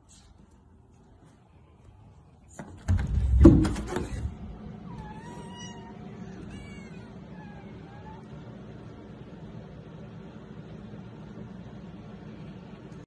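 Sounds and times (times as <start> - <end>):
knocks and clattering: 2.7 - 4.4
cat meowing: 4.8 - 8.4.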